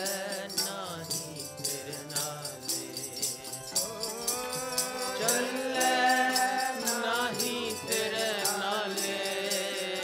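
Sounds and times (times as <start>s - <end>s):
harmonium chords: 0.0s - 10.0s
metallic jingling beat: 0.0s - 10.0s
person singing devotional line: 0.0s - 10.0s.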